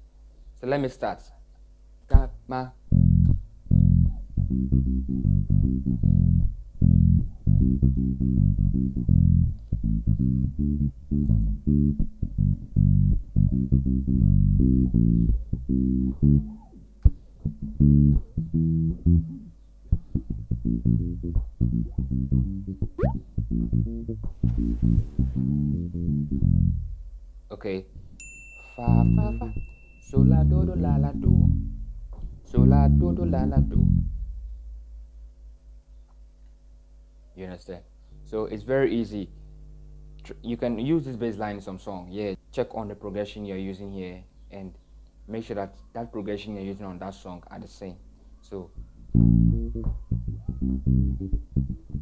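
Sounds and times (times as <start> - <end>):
electric bass reggae bassline: 2.1 - 28.1, 28.8 - 35.4, 48.7 - 52.0.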